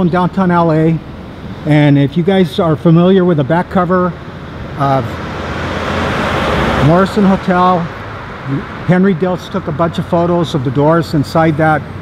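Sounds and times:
car driving past: 0:04.1 - 0:11.2.

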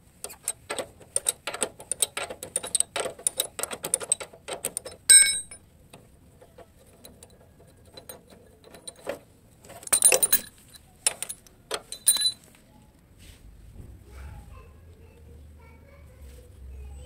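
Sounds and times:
socket wrench clicking and rattling: 0:00.1 - 0:12.4
metal clinks: 0:00.2 - 0:12.5
ringing metal clink: 0:01.9 - 0:05.6, 0:09.8 - 0:12.4.

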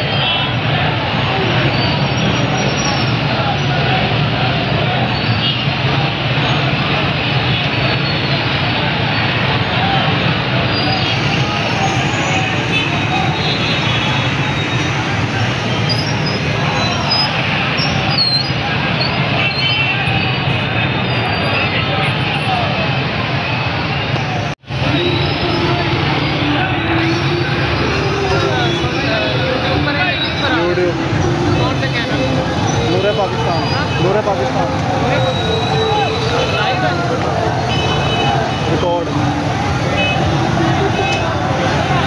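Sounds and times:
crowd voices: 0:00.0 - 0:42.0.

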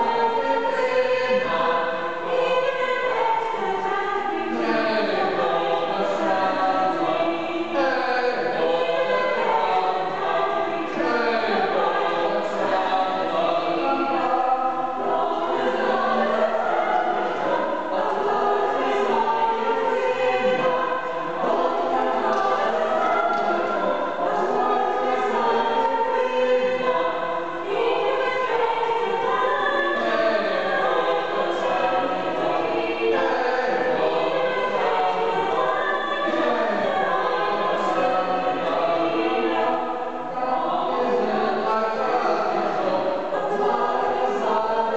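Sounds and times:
a cappella group singing: 0:00.0 - 0:44.9.

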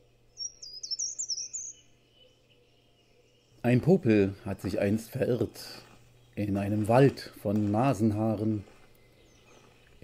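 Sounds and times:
bird twittering: 0:00.0 - 0:10.0.

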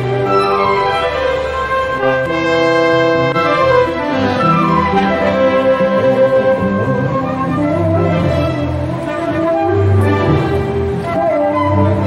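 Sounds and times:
brass chord: 0:00.0 - 0:12.0
chamber orchestra playing: 0:00.0 - 0:12.0
gliding slide-lute melody: 0:00.0 - 0:12.0.

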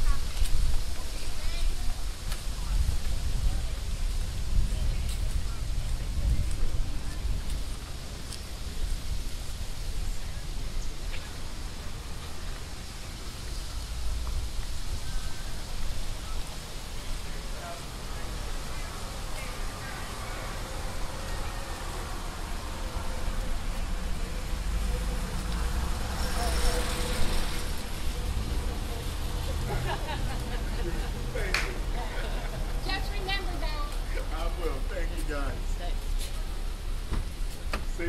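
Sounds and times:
road traffic rumble: 0:00.0 - 0:38.0.

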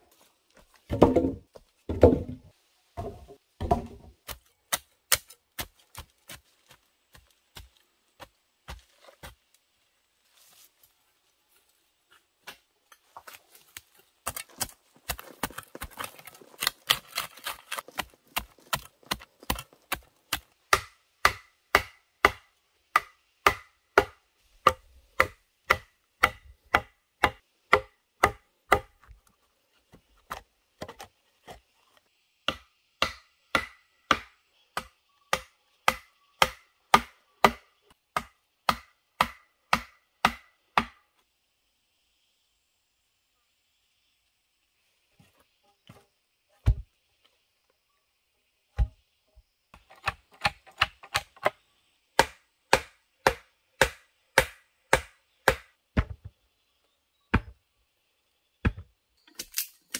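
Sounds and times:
machete chopping bamboo: 0:03.6 - 0:06.4, 0:14.2 - 0:29.0, 0:32.5 - 0:41.0, 0:49.8 - 0:51.6, 0:52.2 - 0:56.2.

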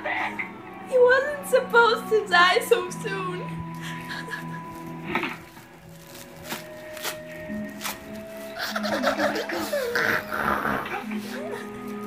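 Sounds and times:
woman sobbing and wailing: 0:03.7 - 0:04.9, 0:08.6 - 0:12.0.

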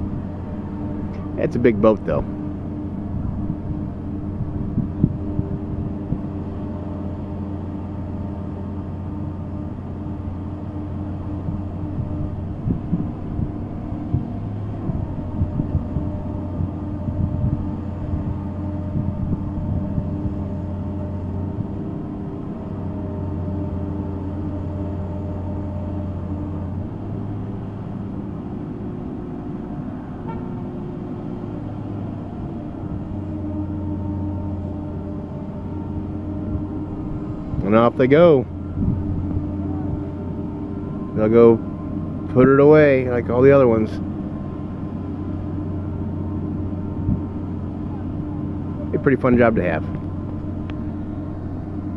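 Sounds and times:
boat hoist engine humming: 0:00.0 - 0:51.9.

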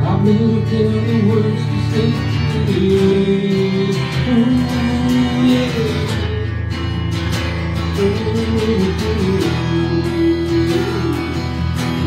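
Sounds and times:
acoustic guitars playing rock ballad: 0:00.0 - 0:12.0.

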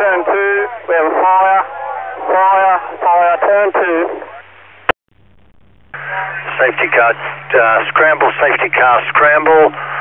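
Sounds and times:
faint radio hiss: 0:00.0 - 0:10.0
radio call: 0:00.0 - 0:10.0.

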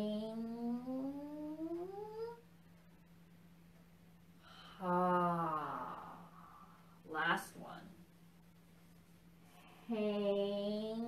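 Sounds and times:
faint steady hum: 0:00.0 - 0:11.0
woman chanting drawn-out syllable: 0:09.8 - 0:11.0.

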